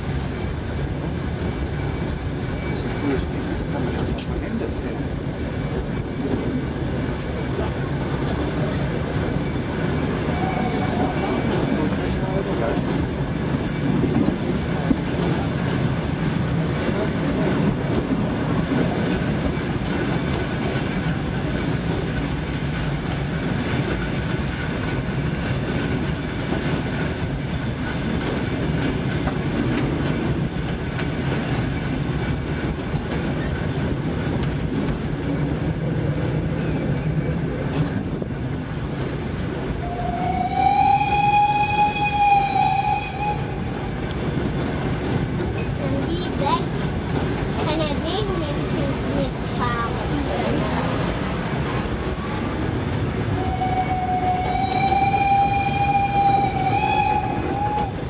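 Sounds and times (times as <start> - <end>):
train rumbling on track: 0.0 - 58.0
train whistle blast: 39.8 - 43.7, 53.4 - 58.0.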